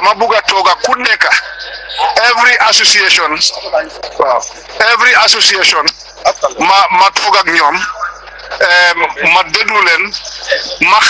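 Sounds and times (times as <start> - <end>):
person talking over radio: 0.0 - 11.0.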